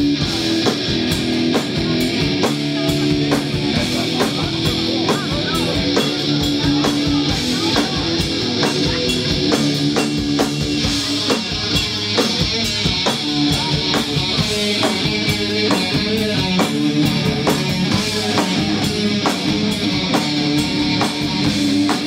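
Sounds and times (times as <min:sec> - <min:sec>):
drum kit beat: 0:00.0 - 0:22.0
electric guitar: 0:00.0 - 0:22.0.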